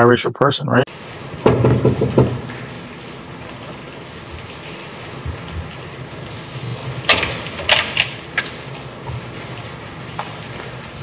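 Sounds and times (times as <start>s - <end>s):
old film soundtrack hiss: 0.9s - 11.0s.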